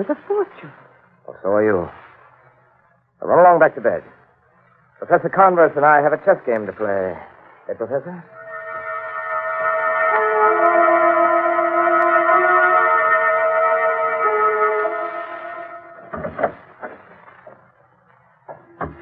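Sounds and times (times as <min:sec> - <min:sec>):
organ music with held chords: 0:08.3 - 0:16.8.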